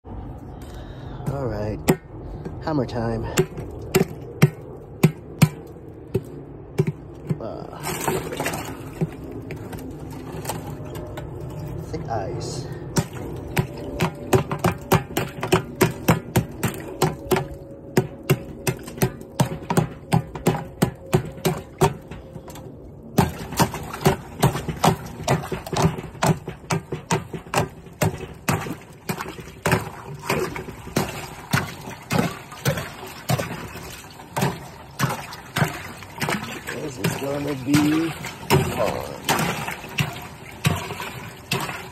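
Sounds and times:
water splashing: 0:01.2 - 0:41.9
hammer breaking ice: 0:23.2 - 0:33.8.

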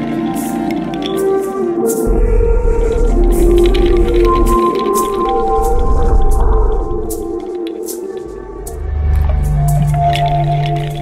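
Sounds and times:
deep bass drone: 0:02.0 - 0:07.4, 0:08.4 - 0:11.0.

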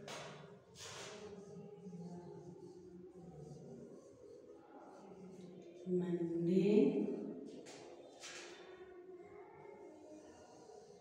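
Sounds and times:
marker scratching on whiteboard: 0:00.0 - 0:05.8, 0:09.7 - 0:11.0.

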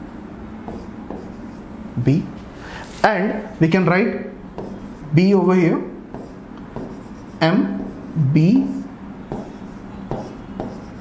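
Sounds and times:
pen strokes on board: 0:00.7 - 0:01.6, 0:04.6 - 0:05.0, 0:06.1 - 0:08.2, 0:09.3 - 0:11.0
light taps on writing board: 0:09.3 - 0:10.9.

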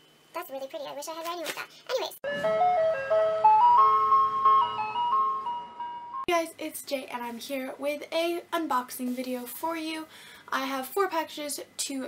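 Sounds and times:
intro jingle melody: 0:02.2 - 0:06.3.

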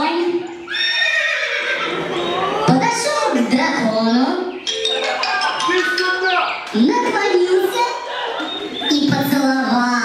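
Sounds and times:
horse neighing: 0:00.6 - 0:02.7.

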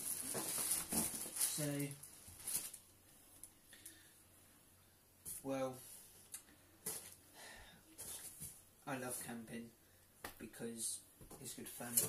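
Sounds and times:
plastic rustling: 0:00.0 - 0:03.5.

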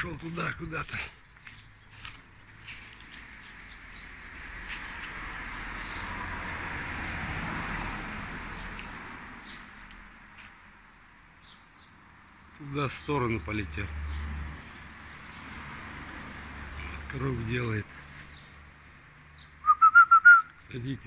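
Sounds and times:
vehicle passing: 0:00.0 - 0:21.0.

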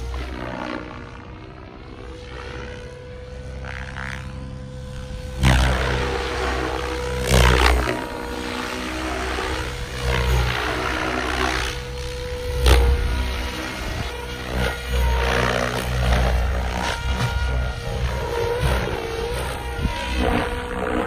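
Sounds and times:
helicopter drive whine: 0:00.0 - 0:21.0
rotor whoosh: 0:00.0 - 0:21.0.

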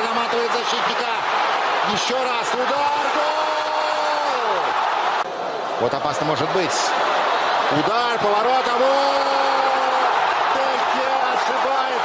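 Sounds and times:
football commentator calling: 0:00.0 - 0:04.7, 0:07.7 - 0:12.0
stadium crowd noise: 0:00.0 - 0:12.0
long held shout: 0:02.7 - 0:05.0.

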